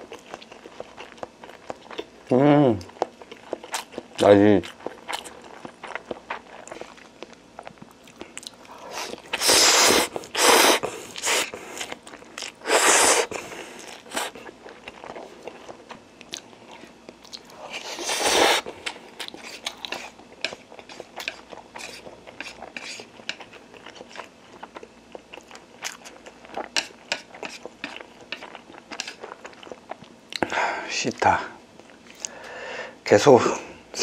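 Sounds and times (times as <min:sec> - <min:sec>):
person chewing noodles: 0:00.0 - 0:30.6
slurping: 0:08.7 - 0:11.9, 0:12.6 - 0:14.4.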